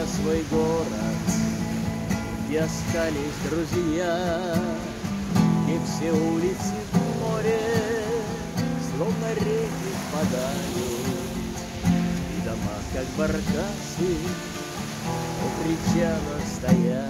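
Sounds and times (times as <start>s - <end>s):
man singing with vibrato: 0.0s - 17.0s
strummed acoustic guitar: 0.0s - 17.0s.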